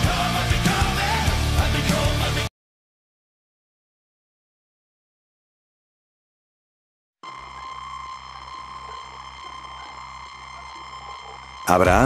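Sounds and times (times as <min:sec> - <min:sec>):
electronic drone of high tones: 0:07.2 - 0:12.0.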